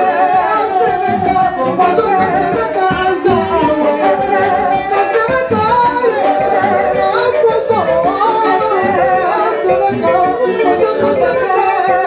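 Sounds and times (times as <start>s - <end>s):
live band music: 0.0s - 12.0s
person singing lead: 0.0s - 12.0s.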